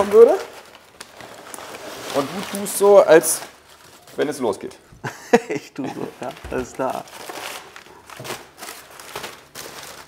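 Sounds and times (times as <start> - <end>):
packing paper rustling: 0.0 - 4.8, 5.9 - 10.0.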